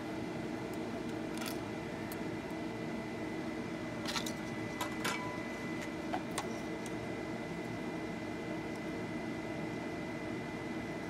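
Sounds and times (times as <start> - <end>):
faint high whine: 0.0 - 11.0
low electrical hum: 0.0 - 11.0.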